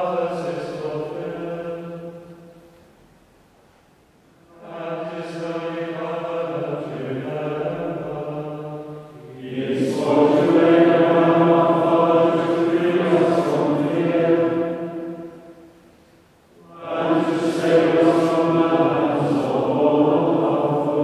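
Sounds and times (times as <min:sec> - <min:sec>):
men singing plainchant: 0:04.5 - 0:14.8, 0:16.6 - 0:21.0.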